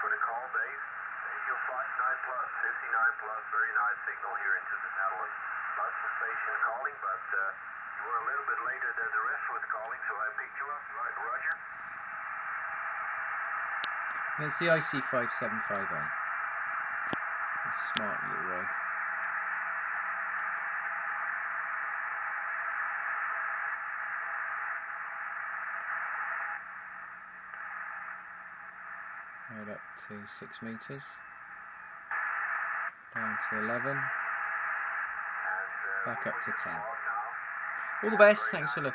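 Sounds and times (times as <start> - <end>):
radio click: 0.0 - 29.5, 30.1 - 38.9
radio receiver hiss and static: 0.0 - 38.9.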